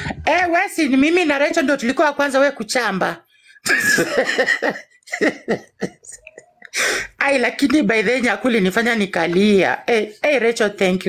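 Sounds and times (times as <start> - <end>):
person laughing hard: 3.7 - 6.7.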